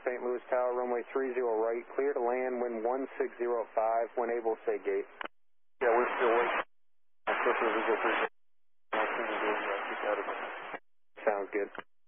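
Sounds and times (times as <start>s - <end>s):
tinny radio voice: 5.8s - 6.6s, 7.3s - 8.3s, 9.0s - 10.5s, 11.2s - 11.8s.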